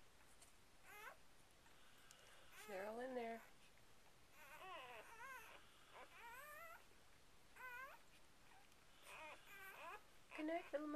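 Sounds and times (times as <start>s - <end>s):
newborn puppies squealing: 0.8s - 1.2s, 2.4s - 3.6s, 4.3s - 6.9s, 7.5s - 10.9s.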